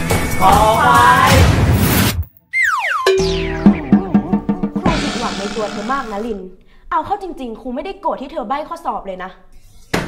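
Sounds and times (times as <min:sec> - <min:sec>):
group shouting excitedly: 0:00.4 - 0:01.4
loud music: 0:02.6 - 0:06.3.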